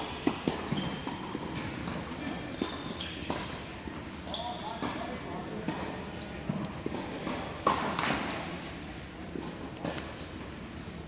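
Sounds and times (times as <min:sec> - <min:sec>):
tennis balls bouncing and struck: 0:00.0 - 0:08.6, 0:09.2 - 0:10.6.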